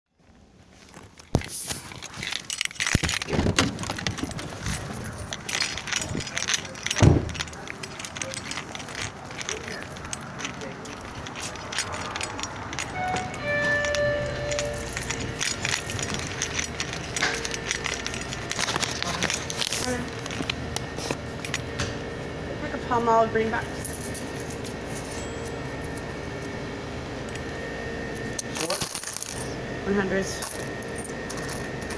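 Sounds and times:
faint steady tones: 0:04.0 - 0:31.9
loud thump: 0:07.0 - 0:07.4.

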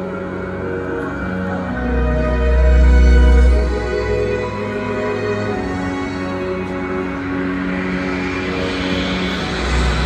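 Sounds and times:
deep bass rumble: 0:06.8 - 0:10.0
noisy rumbling sound effect: 0:07.2 - 0:10.0.

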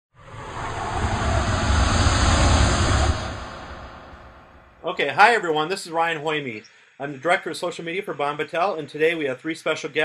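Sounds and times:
loud rushing noise: 0:00.1 - 0:04.9.

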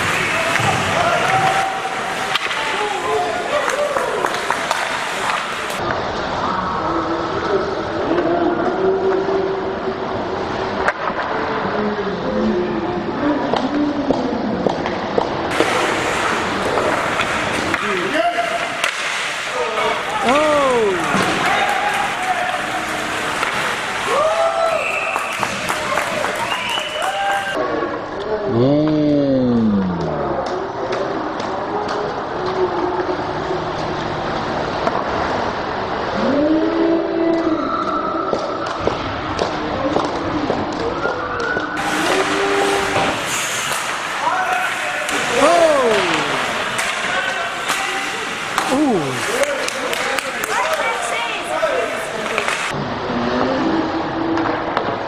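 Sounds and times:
hockey sticks and puck knocks: 0:00.0 - 0:02.8, 0:03.6 - 0:05.7, 0:13.5 - 0:24.1, 0:25.0 - 0:26.9, 0:38.3 - 0:50.9, 0:52.2 - 0:52.7
slowed-down shouts: 0:45.3 - 0:46.6.

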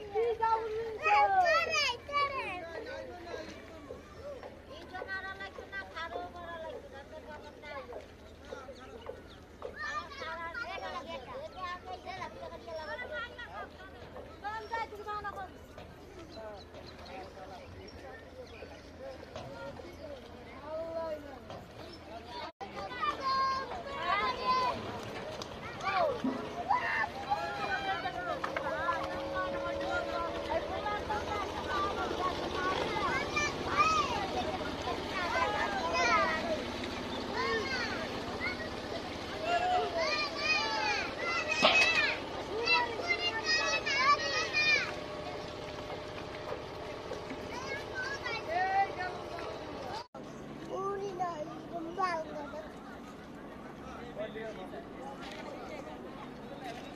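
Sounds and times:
indistinct voices: 0:21.4 - 0:56.9
boat engine droning: 0:23.0 - 0:56.9.

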